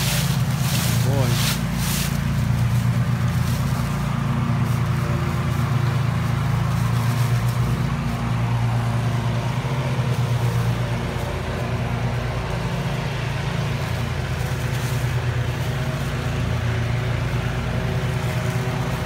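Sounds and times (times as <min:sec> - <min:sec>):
engine running steadily: 0:00.0 - 0:19.0.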